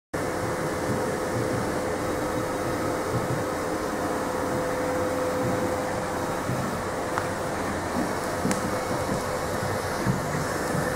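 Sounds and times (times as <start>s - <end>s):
steady machine hum: 0.1s - 10.9s.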